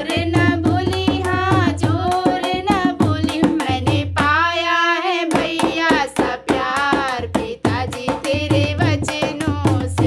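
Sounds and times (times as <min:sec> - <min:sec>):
hand drum beat: 0:00.0 - 0:10.0
woman singing folk song: 0:00.0 - 0:10.0.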